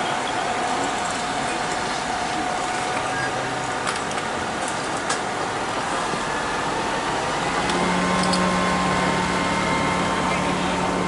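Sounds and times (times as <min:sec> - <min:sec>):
fire pump engine whining: 0:00.0 - 0:11.0.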